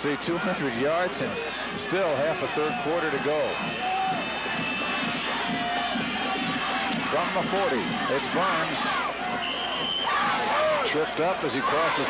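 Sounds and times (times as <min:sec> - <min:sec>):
drawn-out crowd shout: 0:00.0 - 0:12.0
stadium crowd din: 0:00.0 - 0:12.0.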